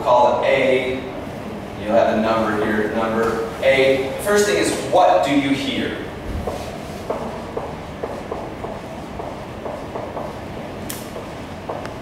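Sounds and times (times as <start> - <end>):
marker writing on whiteboard: 6.3 - 12.0.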